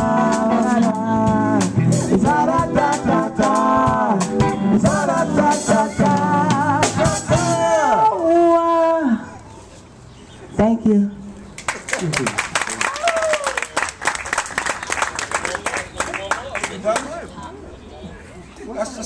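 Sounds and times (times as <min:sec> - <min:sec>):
drum kit: 0:00.0 - 0:07.8
woman singing lead: 0:00.0 - 0:09.1
keyboard: 0:00.0 - 0:12.8.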